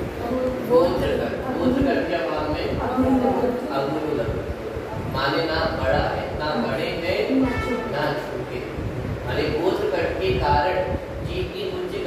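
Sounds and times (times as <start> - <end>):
man lecturing: 5.2 - 12.0.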